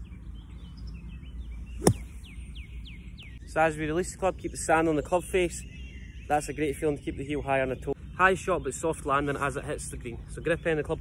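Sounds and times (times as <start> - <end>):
small birds chirping: 0.0 - 11.0
golf club striking sand: 1.8 - 2.3.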